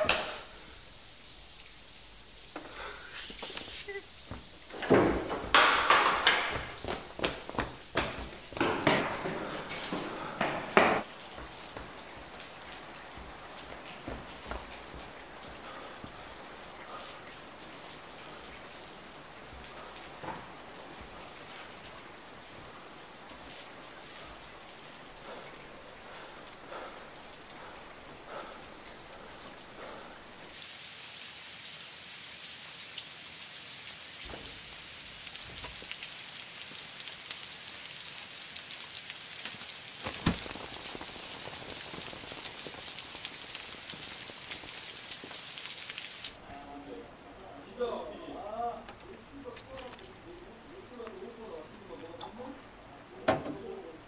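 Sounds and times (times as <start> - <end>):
water drips ticking: 0.0 - 30.6, 34.2 - 46.4
steady rain: 0.0 - 54.0.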